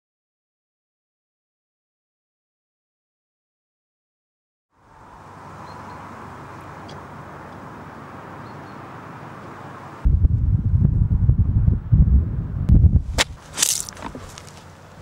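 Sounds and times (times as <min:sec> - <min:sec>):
wind buffeting microphone: 0:10.0 - 0:14.4
sharp noises: 0:13.0 - 0:14.7
faint outdoor hiss: 0:13.1 - 0:15.0.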